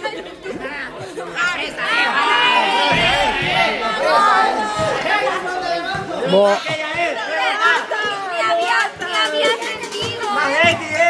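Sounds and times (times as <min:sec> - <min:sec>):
group chatter and laughing: 0:00.0 - 0:11.0.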